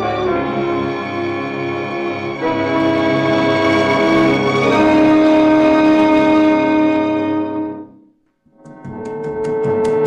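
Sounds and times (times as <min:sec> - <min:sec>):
orchestra holding sustained chord: 0:00.0 - 0:07.9.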